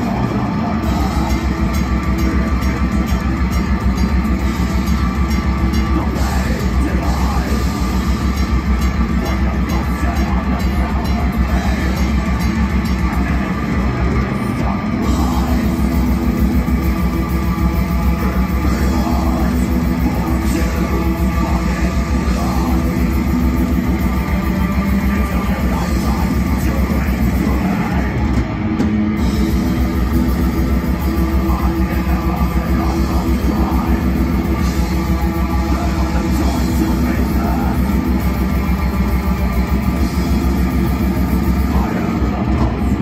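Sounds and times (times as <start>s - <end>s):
metal band playing live: 0.0s - 43.0s.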